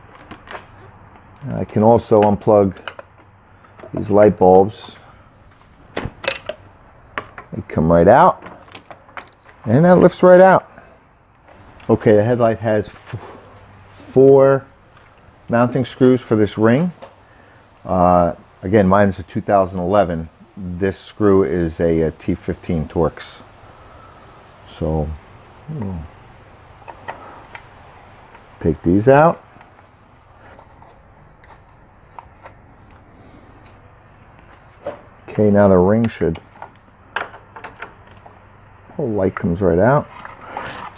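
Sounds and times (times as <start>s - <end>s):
insect chirping: 0.0s - 40.9s
plastic clicks and knocks: 36.0s - 38.4s.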